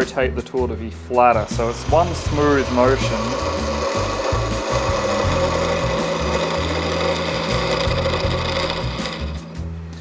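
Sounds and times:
chisel shaving wood on lathe: 0:01.2 - 0:09.6
lathe running hum: 0:01.3 - 0:09.7.

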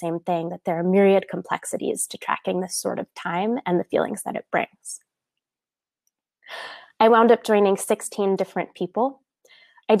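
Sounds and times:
woman's breathy in-breath: 0:06.5 - 0:07.0.

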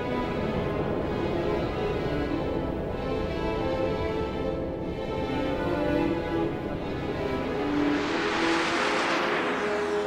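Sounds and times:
jet plane flying past: 0:06.8 - 0:10.0.

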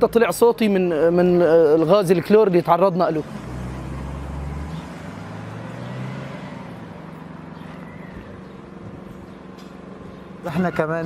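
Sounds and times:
engine hum: 0:00.0 - 0:11.0.

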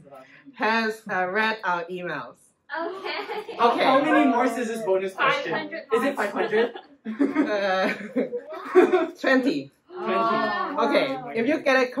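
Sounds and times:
laughter and chuckling: 0:06.3 - 0:09.2.

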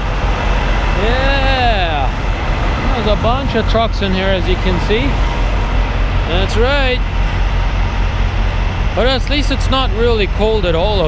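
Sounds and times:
diesel trucks idling: 0:00.0 - 0:11.0.

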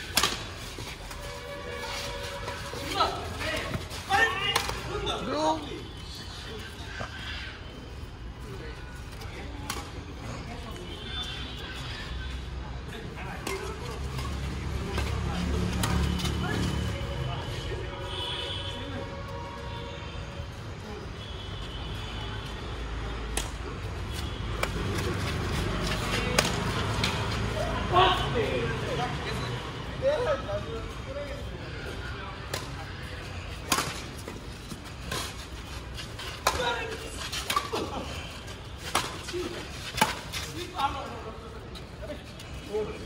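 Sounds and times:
racket hitting shuttlecock: 0:00.0 - 0:00.8, 0:26.2 - 0:27.2, 0:33.6 - 0:34.2, 0:36.4 - 0:37.9
voices calling out: 0:22.4 - 0:43.0.

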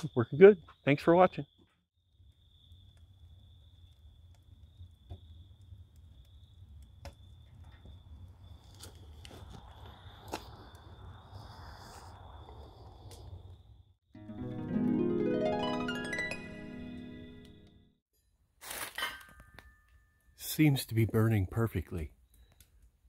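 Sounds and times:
wood fire rumbling: 0:02.0 - 0:13.6
fire crackles and pops: 0:02.0 - 0:13.9, 0:20.4 - 0:23.0
plucked-string music: 0:14.2 - 0:17.9.

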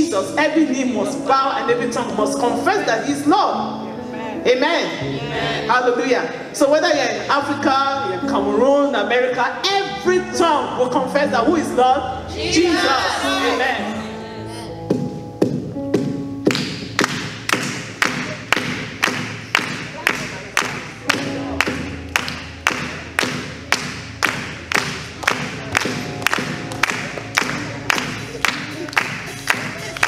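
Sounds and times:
held keyboard notes: 0:00.0 - 0:30.0
group clapping in time: 0:16.5 - 0:30.0.

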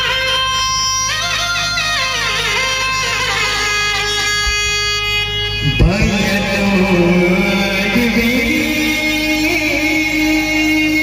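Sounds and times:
man singing into microphone: 0:05.6 - 0:11.0.

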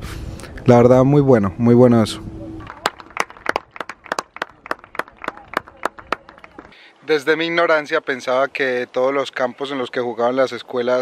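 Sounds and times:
people clapping: 0:02.6 - 0:06.8.

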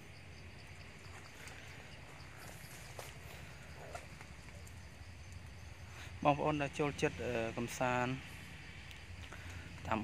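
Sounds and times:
high insect chirr: 0:00.0 - 0:10.0.

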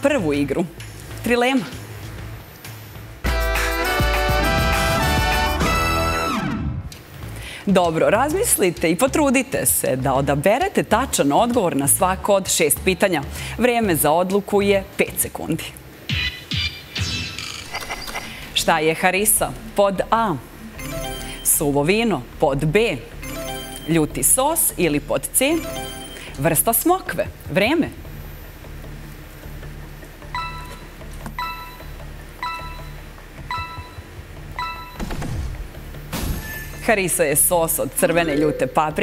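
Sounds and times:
low background music: 0:00.0 - 0:17.4, 0:18.3 - 0:39.0
short electronic beeps: 0:30.3 - 0:35.1, 0:38.3 - 0:39.0.

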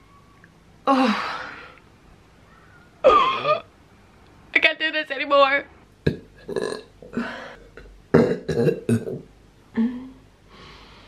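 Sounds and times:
woman burping: 0:03.0 - 0:03.7, 0:06.1 - 0:09.2
woman retching and gagging: 0:03.0 - 0:03.7, 0:06.1 - 0:09.2.

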